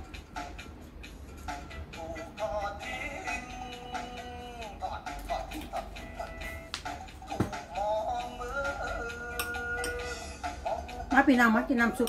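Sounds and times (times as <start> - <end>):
background music: 0.0 - 12.0
person singing long notes: 7.4 - 10.9.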